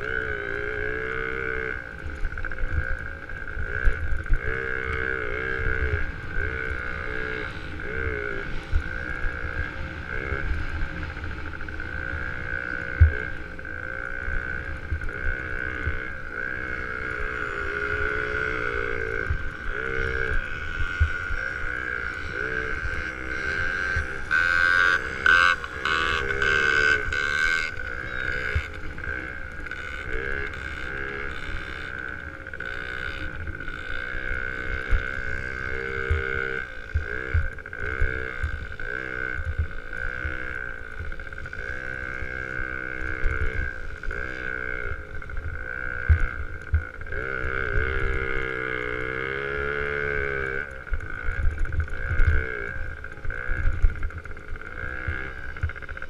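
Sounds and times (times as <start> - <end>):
dirt bike engine revving: 0.0 - 56.0
rough crackle: 0.0 - 56.0
steady high whine: 0.0 - 56.0.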